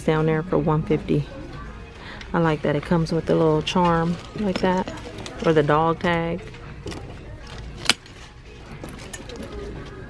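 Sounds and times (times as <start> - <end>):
low store background: 0.0 - 10.0
handbag hardware clicks and rattles: 3.6 - 6.2, 6.8 - 8.2, 8.8 - 9.7.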